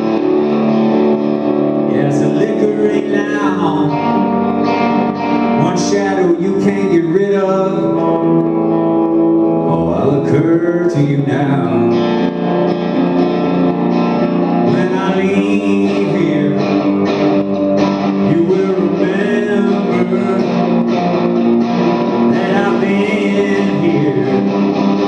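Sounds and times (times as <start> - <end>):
electric guitar playing rock: 0.0 - 25.0.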